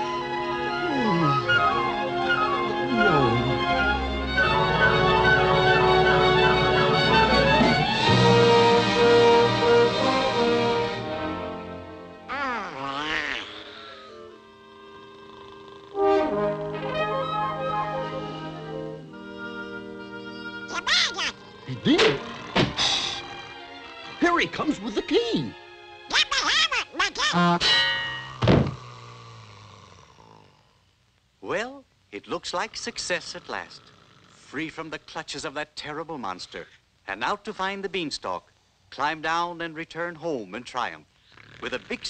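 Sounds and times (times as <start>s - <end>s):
orchestral cartoon music: 0.0s - 12.4s, 16.0s - 28.3s
held musical note: 0.5s - 8.4s
cartoon duck squawking voice: 20.7s - 21.4s, 26.1s - 27.6s
cartoon thunk ringing: 27.5s - 28.8s.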